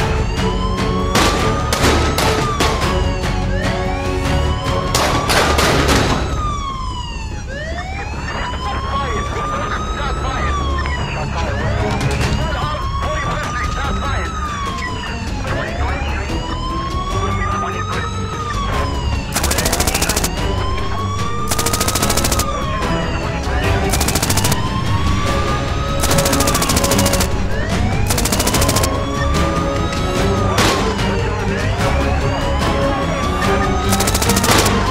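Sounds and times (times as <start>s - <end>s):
wailing police siren: 0.0s - 34.9s
rapid clicking bursts: 19.3s - 20.4s, 21.5s - 22.6s, 23.9s - 24.8s, 26.0s - 27.4s, 28.1s - 29.0s, 33.9s - 34.9s.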